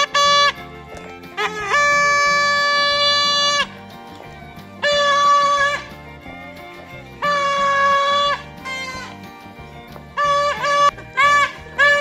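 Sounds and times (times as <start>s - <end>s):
toy trumpet toots: 0.0s - 0.6s, 1.3s - 3.7s, 4.8s - 5.8s, 7.2s - 9.2s, 10.2s - 12.0s.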